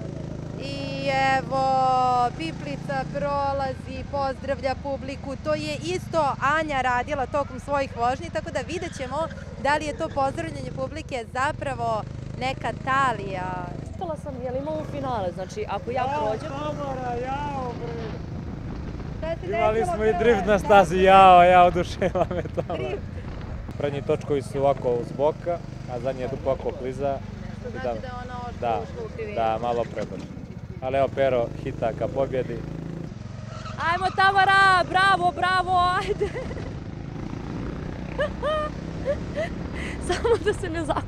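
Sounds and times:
go-kart engine rumbling: 0:00.0 - 0:41.0.

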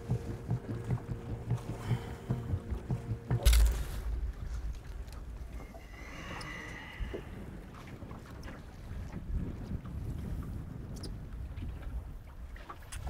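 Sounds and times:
water slapping boat hull: 0:00.0 - 0:13.0
wind and handling rumble on microphone: 0:00.0 - 0:13.0.

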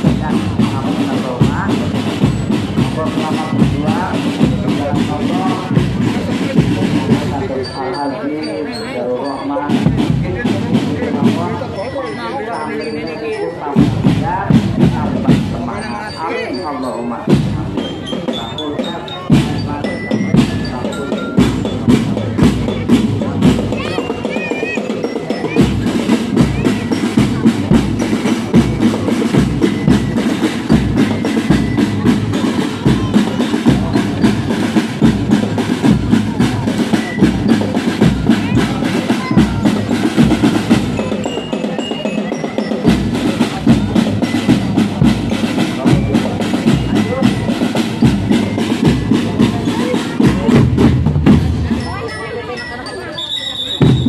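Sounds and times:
marching drum band: 0:00.0 - 0:54.0.

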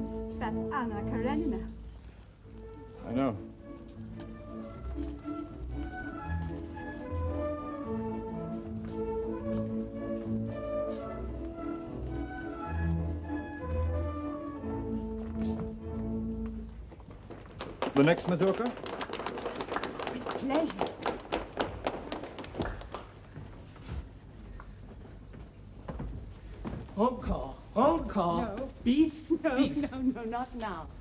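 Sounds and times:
orchestral ballroom dance music: 0:00.0 - 0:16.9.

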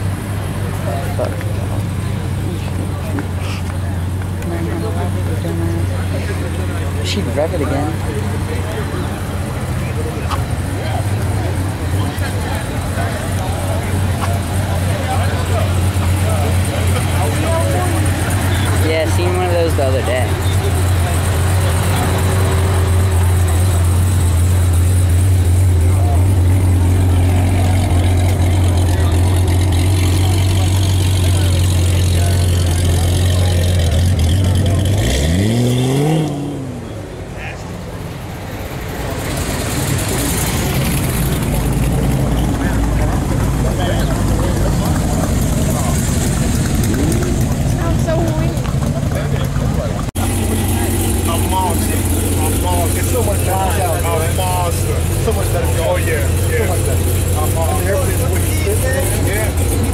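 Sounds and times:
car engine idling: 0:00.0 - 0:59.9
car engine revving: 0:00.0 - 0:59.9.

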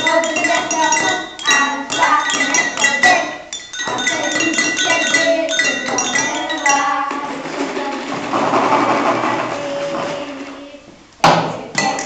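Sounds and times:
drinking glass struck ringing: 0:00.0 - 0:07.1.

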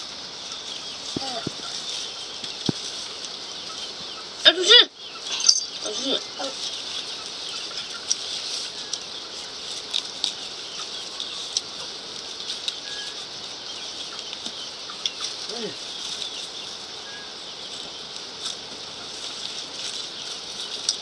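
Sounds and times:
corn husks rustling and crackling: 0:00.0 - 0:21.0
steady high hiss: 0:00.0 - 0:21.0
child's voice: 0:01.2 - 0:01.6, 0:05.8 - 0:06.6.

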